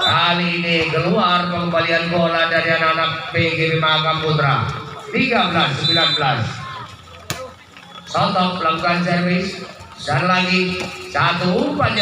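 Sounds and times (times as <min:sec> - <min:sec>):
man talking: 0:00.0 - 0:06.8, 0:08.0 - 0:12.0
volleyball hit: 0:07.1 - 0:07.6.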